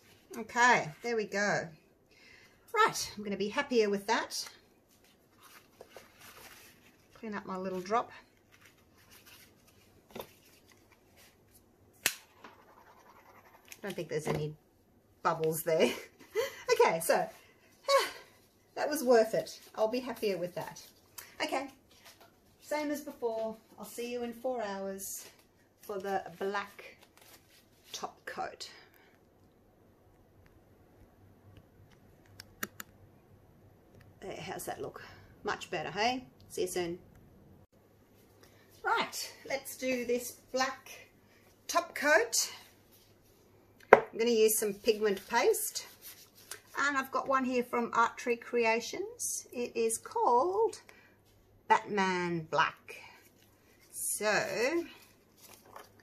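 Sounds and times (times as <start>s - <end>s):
woman speaking: 0.3s - 1.8s, 2.7s - 4.6s, 7.2s - 8.3s, 13.8s - 14.6s, 15.2s - 18.2s, 18.8s - 21.8s, 22.6s - 27.0s, 27.9s - 28.9s, 34.2s - 37.0s, 38.8s - 41.1s, 41.7s - 42.7s, 44.0s - 46.0s, 46.7s - 50.8s, 51.7s - 53.3s, 53.9s - 55.0s
paper towel rustling: 4.8s - 11.7s, 44.4s - 47.2s, 53.2s - 56.0s.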